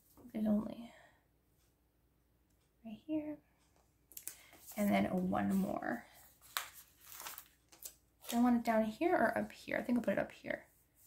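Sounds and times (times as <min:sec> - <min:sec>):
paper sticker sheet crinkling: 0:04.1 - 0:08.6.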